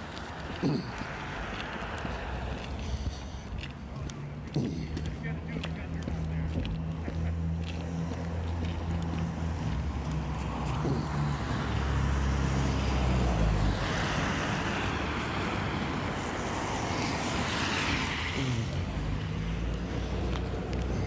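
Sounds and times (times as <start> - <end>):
rushing traffic noise: 0.0 - 21.0
vehicle engine humming: 0.0 - 21.0.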